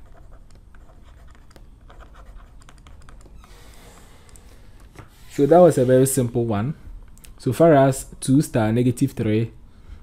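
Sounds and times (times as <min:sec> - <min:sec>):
stylus tapping and scratching: 0:00.0 - 0:05.1.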